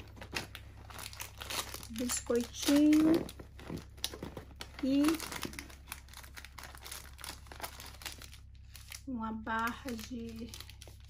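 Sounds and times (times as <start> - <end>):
foil lining and snacks crinkling: 0.0 - 11.0.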